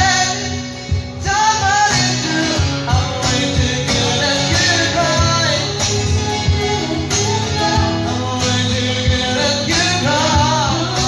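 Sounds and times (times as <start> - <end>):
acoustic guitar: 0.0 - 11.0
person singing: 0.0 - 11.0.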